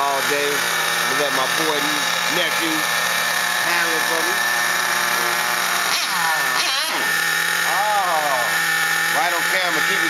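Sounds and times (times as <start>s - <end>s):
small engine high buzz: 0.0s - 10.0s.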